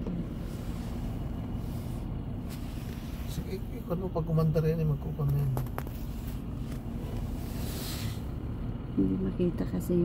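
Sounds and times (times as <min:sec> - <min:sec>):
traffic rumble inside car: 0:00.0 - 0:10.0.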